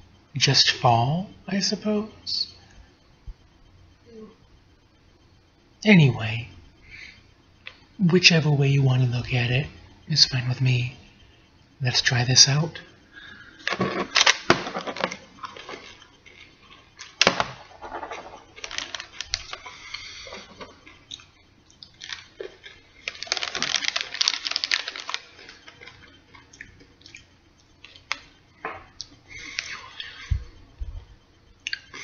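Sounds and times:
chewing and crunching candies: 13.3s - 28.3s, 28.9s - 30.4s, 31.6s - 32.0s
plastic wrapper crinkling and tearing: 13.6s - 16.0s, 17.0s - 19.7s, 21.9s - 26.0s.

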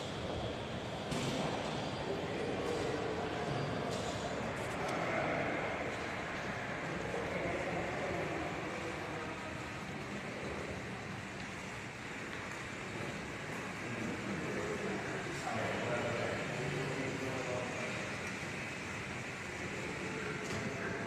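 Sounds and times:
group walking through large hall: 0.0s - 21.0s.

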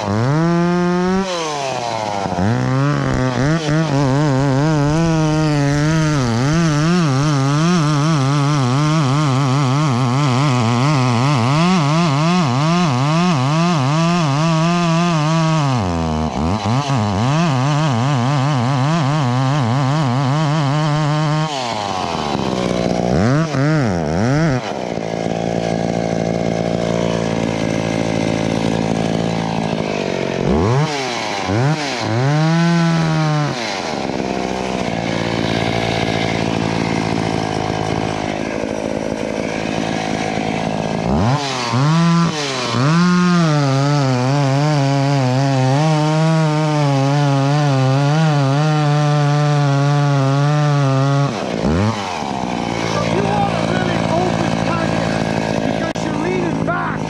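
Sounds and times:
chainsaw cutting tree trunk: 0.0s - 57.0s
chainsaw revving and idling: 0.0s - 57.0s.

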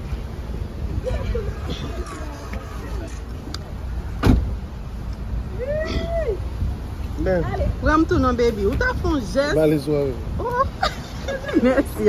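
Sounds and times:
sharp thump: 4.2s - 4.6s.

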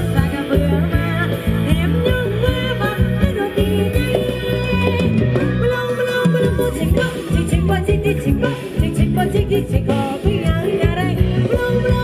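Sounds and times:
live band dance music: 0.0s - 12.0s.

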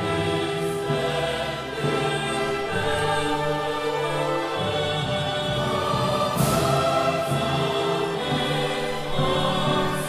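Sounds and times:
choir singing: 0.0s - 10.0s
string orchestra: 0.0s - 10.0s.

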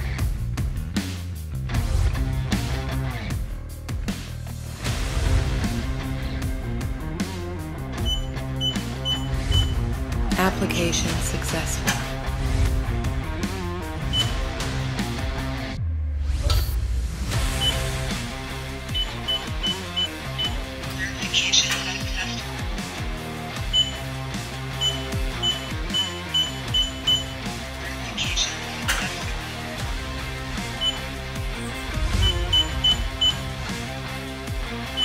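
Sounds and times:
background music: 0.0s - 35.0s
keypad beeps: 8.0s - 9.8s, 14.1s - 14.4s, 17.6s - 17.9s, 18.9s - 20.7s, 23.7s - 24.0s, 24.8s - 27.4s, 30.8s - 31.1s, 32.2s - 33.5s.

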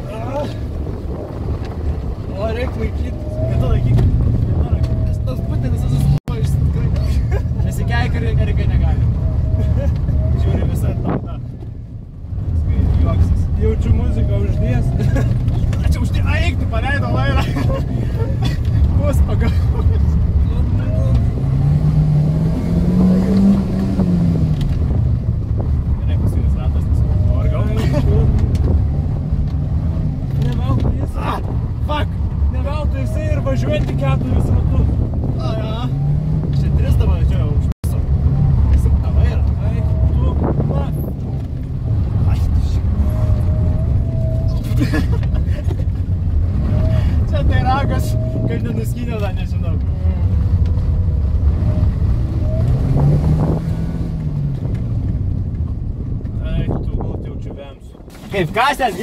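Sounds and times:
voices inside car: 0.0s - 21.8s, 22.5s - 59.0s
car engine revving: 0.0s - 59.0s.

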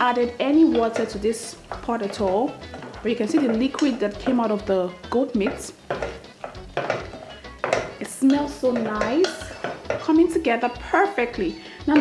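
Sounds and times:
background music: 0.0s - 12.0s
wooden spoon stirring meat in pot: 0.0s - 12.0s
spoon knocking and scraping pot: 0.2s - 12.0s.

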